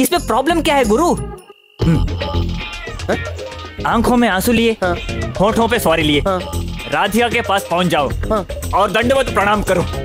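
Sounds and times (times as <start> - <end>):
film background music: 0.0 - 10.0
high-pitched whining voice: 1.8 - 3.5.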